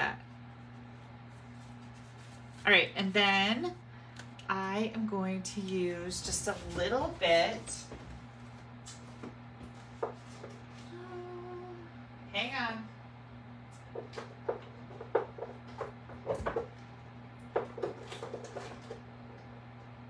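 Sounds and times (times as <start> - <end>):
low electrical hum: 0.0 - 20.0
woman humming: 10.8 - 12.1.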